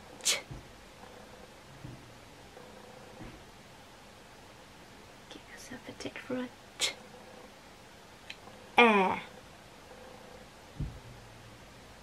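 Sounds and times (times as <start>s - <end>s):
woman whispering: 0.2s - 0.5s, 5.3s - 7.0s.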